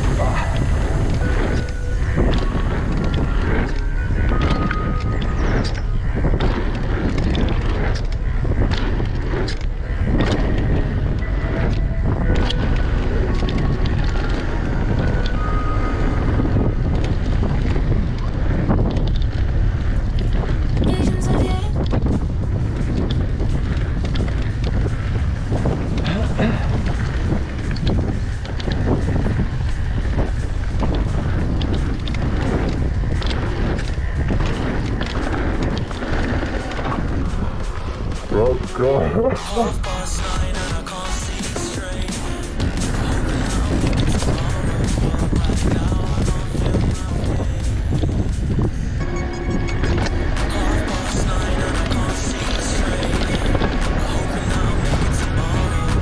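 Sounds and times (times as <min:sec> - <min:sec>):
bike rattling and knocking: 0:00.0 - 0:56.0
tyres running over dirt: 0:00.0 - 0:56.0
wind rumble on microphone: 0:00.0 - 0:56.0.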